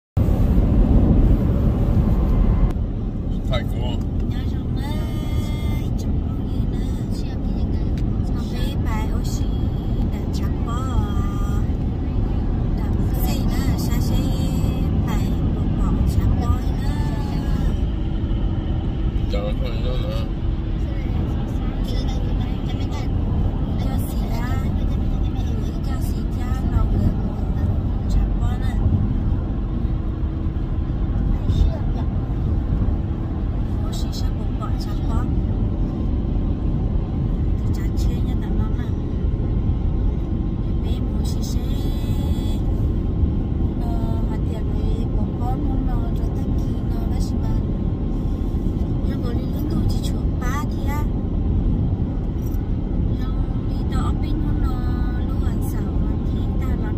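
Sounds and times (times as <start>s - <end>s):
car road and engine noise: 0.1s - 56.9s
people talking: 3.4s - 17.9s, 19.3s - 28.9s, 31.2s - 32.2s, 33.6s - 35.4s, 37.6s - 39.0s, 40.8s - 42.7s, 43.8s - 47.7s, 49.0s - 51.1s, 52.4s - 56.9s.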